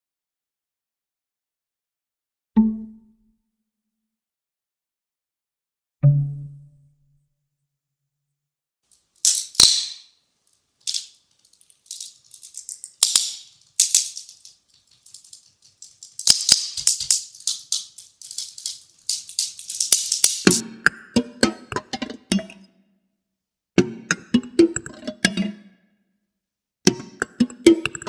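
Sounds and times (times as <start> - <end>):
dry sticks rattling: 8.9 - 20.6.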